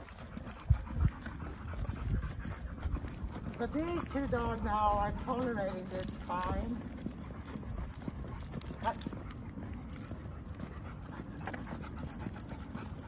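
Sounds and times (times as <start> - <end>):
dog panting: 0.0 - 13.0
footsteps on asphalt: 0.0 - 13.0.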